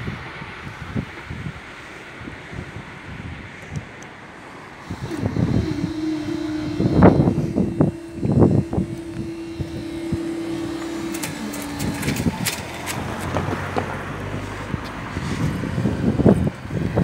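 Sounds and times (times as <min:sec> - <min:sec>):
steady hum: 0:04.4 - 0:14.7.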